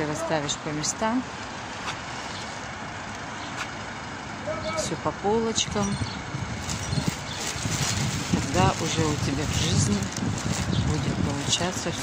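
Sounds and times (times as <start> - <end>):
woman speaking: 0.0 - 1.3, 4.8 - 6.0, 8.3 - 10.2, 10.8 - 12.0
city street traffic: 0.0 - 12.0.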